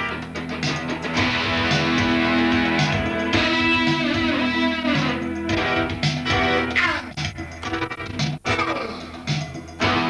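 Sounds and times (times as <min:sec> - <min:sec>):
electric guitar: 0:00.0 - 0:06.8, 0:09.8 - 0:10.0
electronic keyboard playing: 0:01.2 - 0:10.0.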